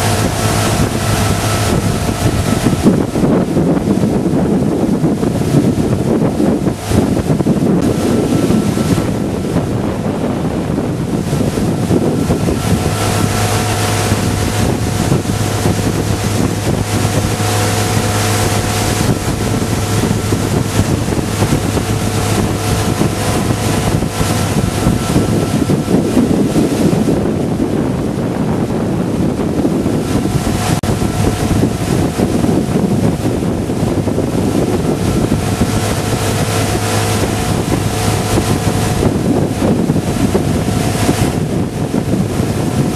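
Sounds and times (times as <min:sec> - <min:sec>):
motorboat engine running: 0:00.0 - 0:42.9
wind buffeting microphone: 0:00.0 - 0:42.9.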